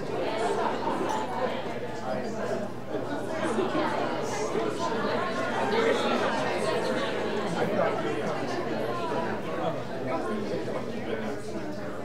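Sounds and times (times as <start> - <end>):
audience chatter: 0.0 - 12.0.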